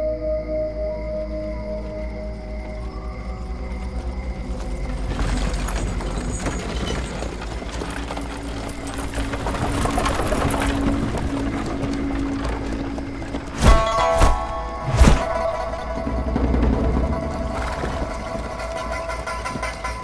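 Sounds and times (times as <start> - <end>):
cart wheels rolling: 1.8 - 20.0
hooves clattering: 1.8 - 20.0.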